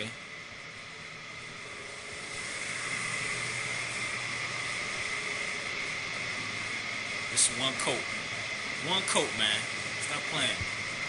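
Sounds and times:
machinery hiss and high whine: 0:00.0 - 0:11.0.

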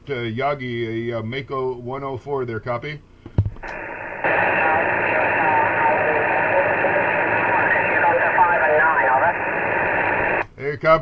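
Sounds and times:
weak voice in static: 0:03.6 - 0:10.4
radio static hiss: 0:03.6 - 0:10.5
man's voice on radio: 0:03.7 - 0:10.4.

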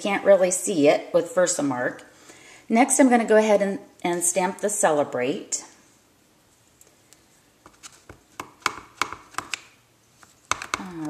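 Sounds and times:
hard plastic taps: 0:10.5 - 0:11.0.

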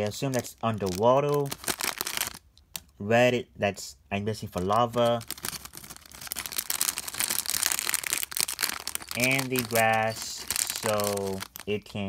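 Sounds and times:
plastic bags crinkling: 0:00.0 - 0:02.9, 0:04.5 - 0:12.0.

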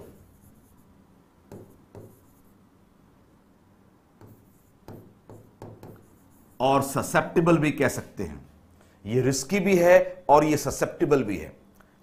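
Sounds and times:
stylus writing on screen: 0:00.0 - 0:02.6, 0:04.2 - 0:07.6.

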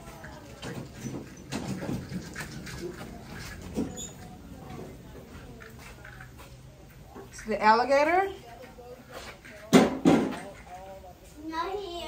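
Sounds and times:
distant voices of people and children: 0:00.0 - 0:12.0.

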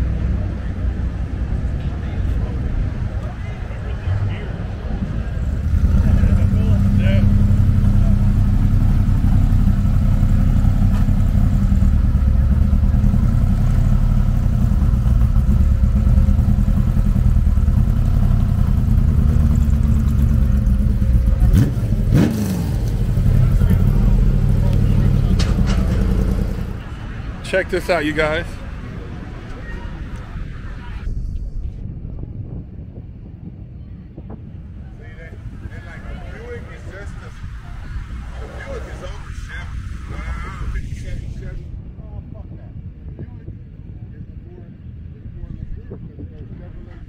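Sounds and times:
car engine idling: 0:00.4 - 0:31.0.

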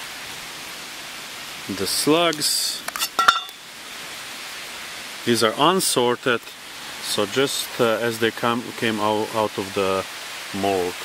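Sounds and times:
light rain hiss: 0:00.0 - 0:11.0.

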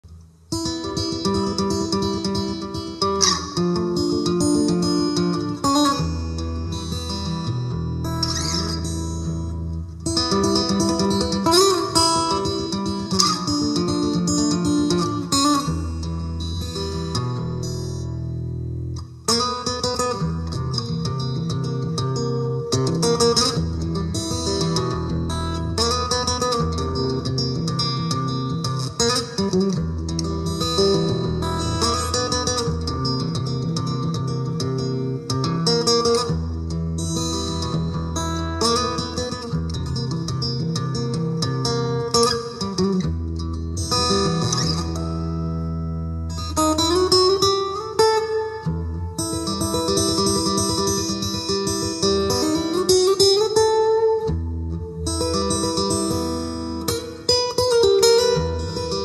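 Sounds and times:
acoustic guitar playing: 0:00.1 - 0:59.0.

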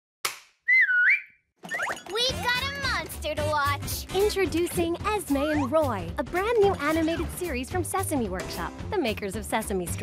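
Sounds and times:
cartoon whistle dipping in pitch: 0:00.7 - 0:01.9
music: 0:01.8 - 0:10.0.

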